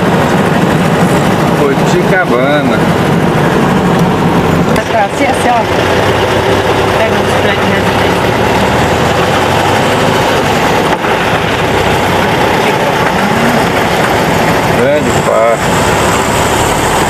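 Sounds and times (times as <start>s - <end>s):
car engine: 0.0s - 17.0s
road noise: 0.0s - 17.0s.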